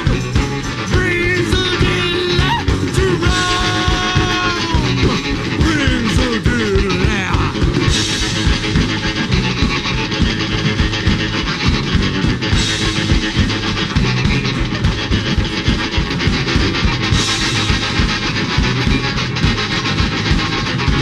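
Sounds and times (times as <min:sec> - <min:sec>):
hand-carried bass drum beaten: 0:00.0 - 0:21.0
punk rock band playing: 0:00.0 - 0:21.0.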